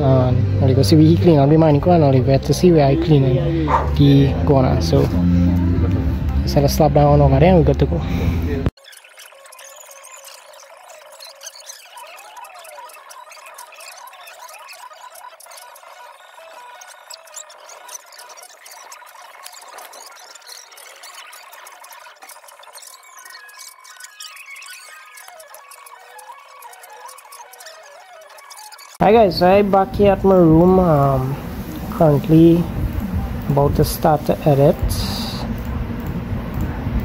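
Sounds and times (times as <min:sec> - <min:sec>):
squeaky sped-up voices: 0:00.0 - 0:37.0.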